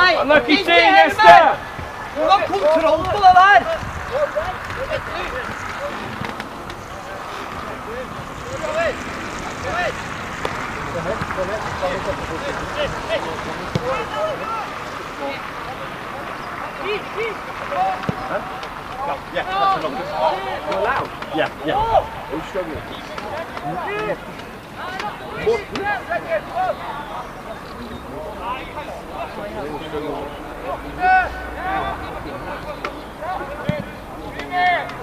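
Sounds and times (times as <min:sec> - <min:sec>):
people shouting: 0:00.0 - 0:11.3, 0:16.6 - 0:22.4, 0:28.1 - 0:35.0.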